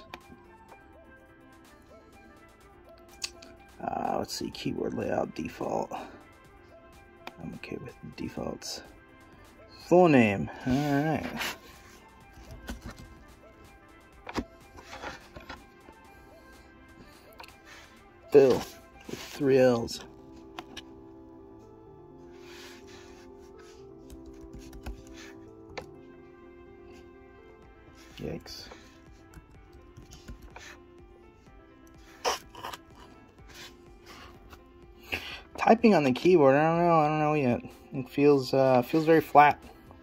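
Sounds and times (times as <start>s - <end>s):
faint background music: 0.0s - 40.0s
laptop keyboard typing: 24.0s - 26.0s, 29.0s - 30.8s.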